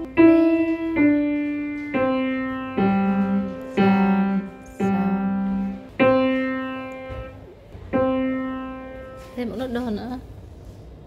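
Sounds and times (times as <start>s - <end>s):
single piano notes: 0.0s - 9.6s.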